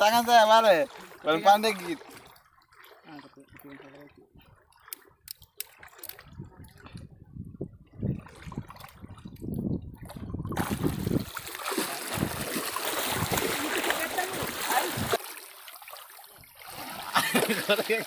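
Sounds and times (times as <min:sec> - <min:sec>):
water splashing from wading: 0:00.0 - 0:18.0.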